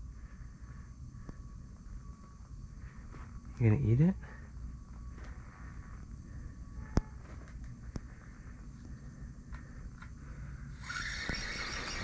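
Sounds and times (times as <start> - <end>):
low background rumble: 0.0 - 11.2
faint high hum: 0.0 - 12.0.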